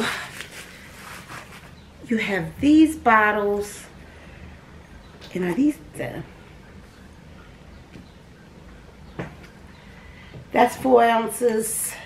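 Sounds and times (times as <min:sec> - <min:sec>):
bubble wrap crinkling: 0:00.2 - 0:01.8.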